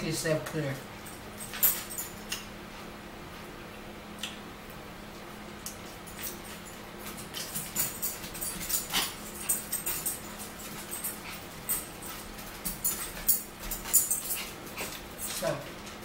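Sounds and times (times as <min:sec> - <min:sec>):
steady low hum: 0:00.0 - 0:16.0
chewing and mouth smacks: 0:04.2 - 0:04.4.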